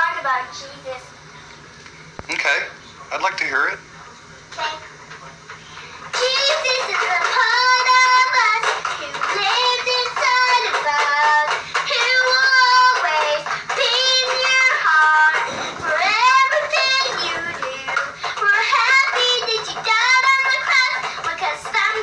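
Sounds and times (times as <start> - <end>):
toy guitar strumming: 6.1 - 22.0
girl singing: 6.2 - 22.0.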